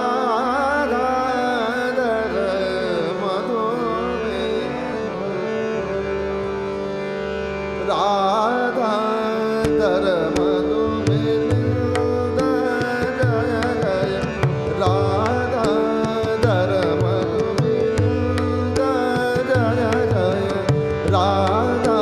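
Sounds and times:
man singing ornamented melody: 0.0 - 6.6, 7.8 - 22.0
harmonium: 0.0 - 22.0
tanpura drone: 0.0 - 22.0
tabla strokes: 10.4 - 22.0.

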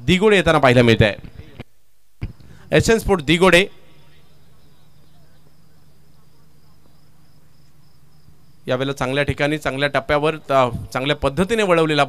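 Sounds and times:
high-pitched insect trill: 4.7 - 8.7.

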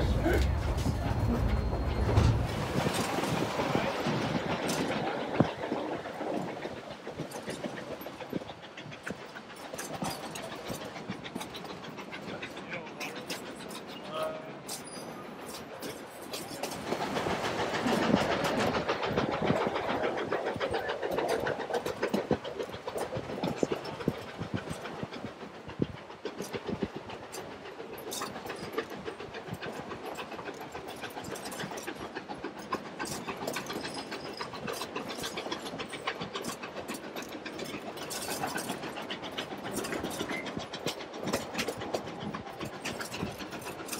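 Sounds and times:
train cars rumbling: 0.0 - 43.9
wheels clacking over rail joints: 0.0 - 43.9.

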